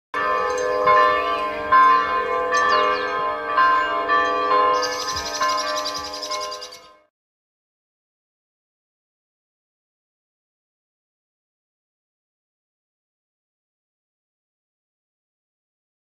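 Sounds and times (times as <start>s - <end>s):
birds chirping: 0.2s - 4.0s, 4.6s - 7.0s
church bells ringing: 0.2s - 7.1s.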